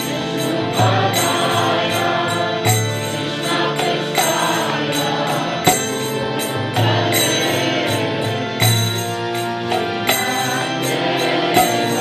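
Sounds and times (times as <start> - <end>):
devotional chanting: 0.0 - 12.0
harmonium chords: 0.0 - 12.0
sharp percussive strikes: 0.0 - 12.0.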